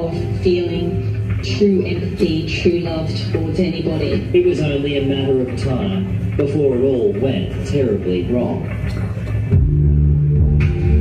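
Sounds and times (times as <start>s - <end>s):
band music with deep bass tones: 0.0s - 11.0s.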